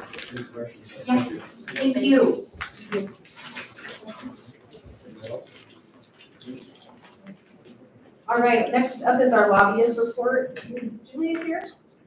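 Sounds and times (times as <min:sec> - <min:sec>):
person speaking: 0:00.0 - 0:12.0.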